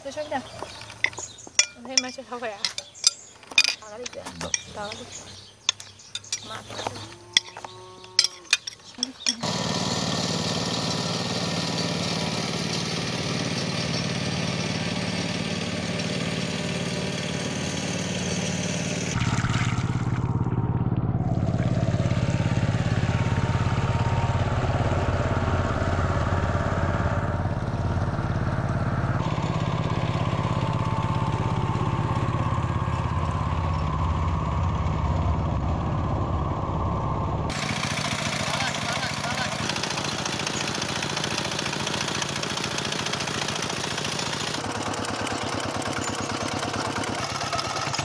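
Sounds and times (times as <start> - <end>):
diesel engine running: 0.0 - 48.0.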